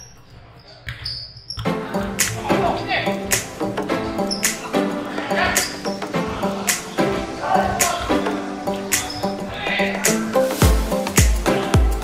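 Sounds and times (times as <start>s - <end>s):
music or voices: 1.7s - 12.0s.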